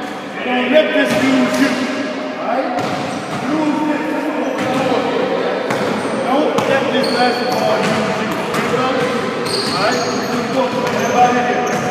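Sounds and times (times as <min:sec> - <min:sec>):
hubbub of overlapping voices: 0:00.0 - 0:11.9
basketballs bouncing on gym floor: 0:02.8 - 0:03.7, 0:04.5 - 0:05.1, 0:05.7 - 0:11.9.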